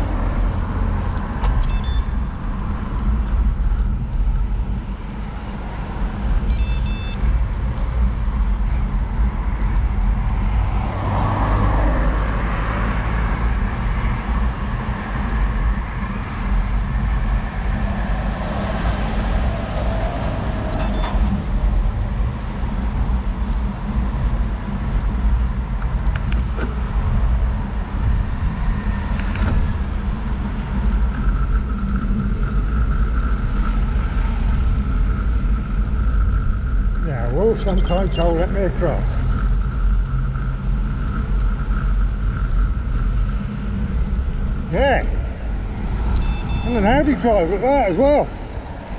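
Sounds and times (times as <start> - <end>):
road traffic passing: 0.0 - 48.9
wind buffeting microphone: 7.1 - 37.8
steady whine: 14.5 - 48.9.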